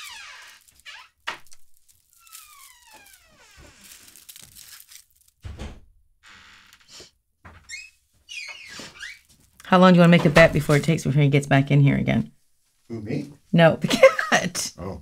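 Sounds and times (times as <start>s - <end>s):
door shutting with dull thuds: 5.4s - 6.0s.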